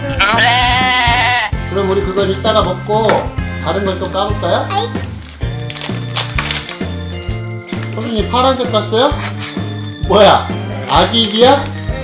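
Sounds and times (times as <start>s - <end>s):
background music: 0.0s - 12.0s
plastic wrapper crinkling: 5.0s - 7.0s, 7.7s - 8.3s, 10.8s - 12.0s.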